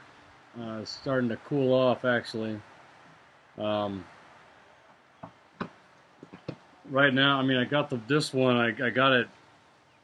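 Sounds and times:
man talking: 0.5s - 2.7s, 3.6s - 4.1s, 6.8s - 9.4s
small clicks and taps: 5.2s - 6.6s.

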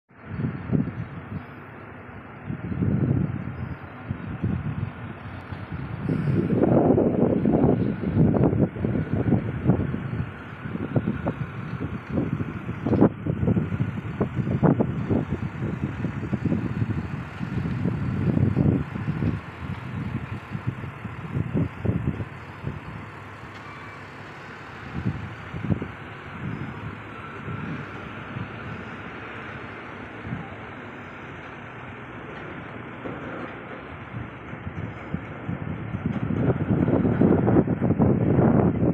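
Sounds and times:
heavy trucks running: 0.1s - 38.9s
wind buffeting microphone: 0.1s - 38.9s.

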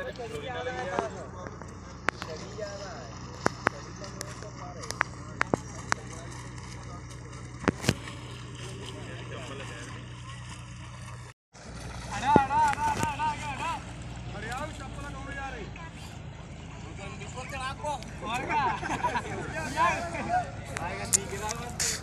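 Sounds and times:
low motor hum: 0.0s - 22.0s.

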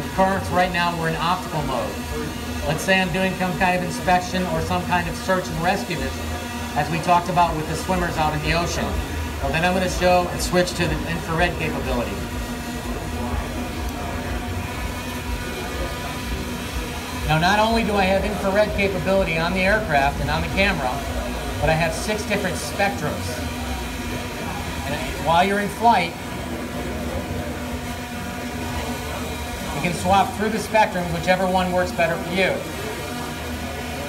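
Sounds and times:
background music: 0.0s - 32.8s
drone rotors humming: 0.0s - 34.0s
exhibition hall crowd noise: 0.0s - 34.0s.

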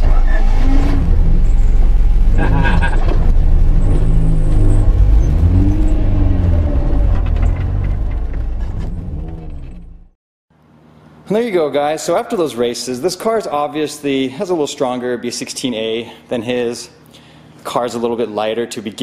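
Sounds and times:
cars accelerating hard: 0.0s - 9.9s.

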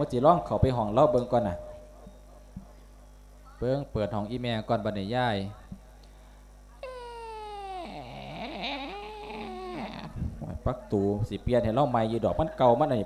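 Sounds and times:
high-pitched wail: 6.8s - 10.2s.

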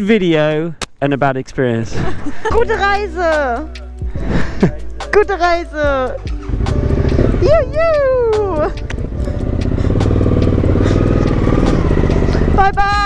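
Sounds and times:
motorcycle engine running: 5.6s - 13.0s
person calling goodbye: 7.4s - 8.8s.

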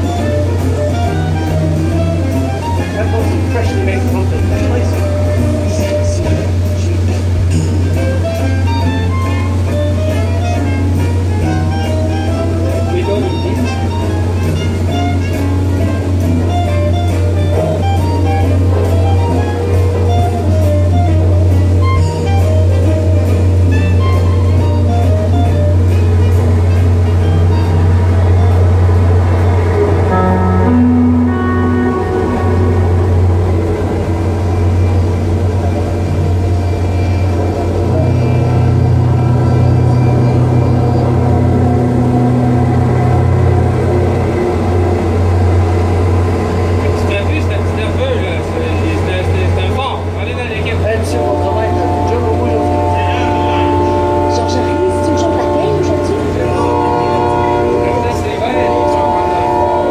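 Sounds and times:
music with voices: 0.0s - 34.1s
loud low drone: 0.0s - 59.9s.

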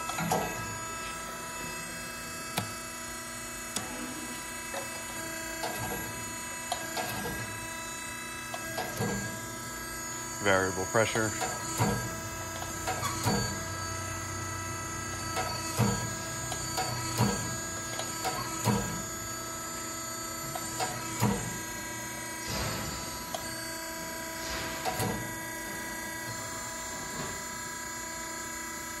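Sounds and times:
press drive unit humming: 0.0s - 28.0s.

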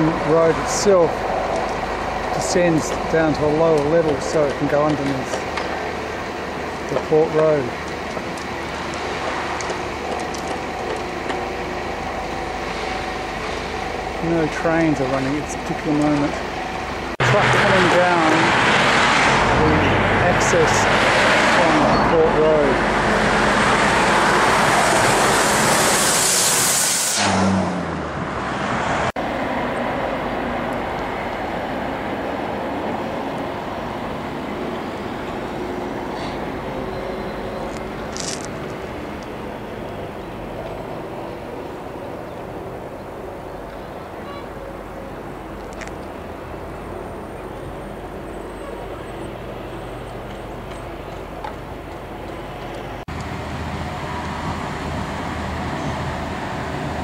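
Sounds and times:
traffic hum: 0.0s - 57.0s
truck diesel engine passing: 0.0s - 57.0s.

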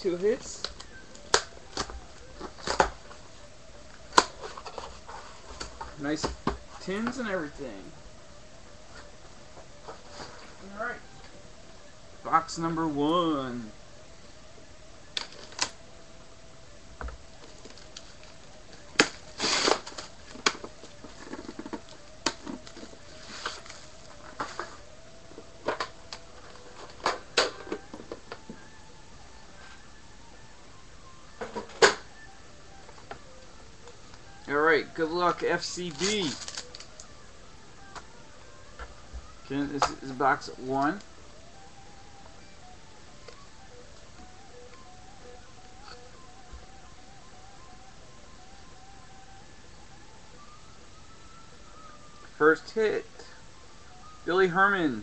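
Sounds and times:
packing tape tearing: 19.0s - 20.6s, 35.9s - 37.1s
plastic wrap crinkling: 35.7s - 37.1s.

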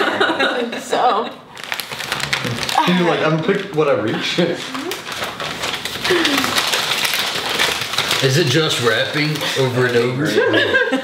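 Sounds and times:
wrapping paper tearing and crinkling: 1.5s - 10.3s.

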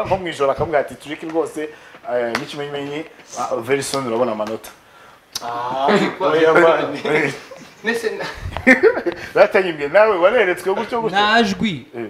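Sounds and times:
man speaking into a microphone: 9.4s - 12.0s.

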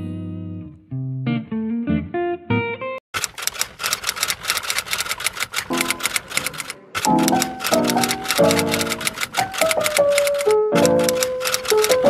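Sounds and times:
rapid keyboard typing clicks: 3.2s - 12.0s.

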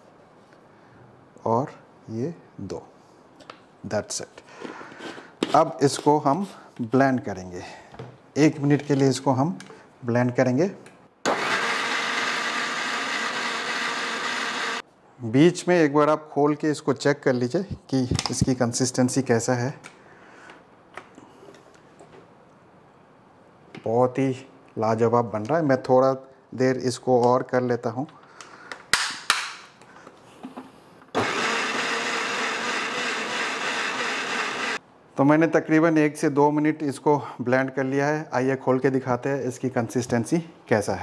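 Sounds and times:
electric mixer grinder running: 11.3s - 14.8s, 31.2s - 34.8s.

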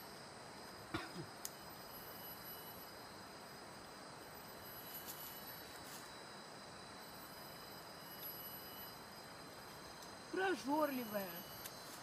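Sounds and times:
high-pitched insect drones: 0.0s - 12.0s
low steady hiss: 0.0s - 12.0s
faint ticks: 1.4s - 1.6s.

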